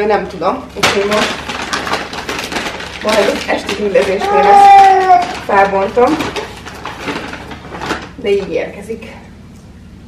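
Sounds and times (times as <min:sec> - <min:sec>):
paper bag rustling: 0:00.8 - 0:08.5.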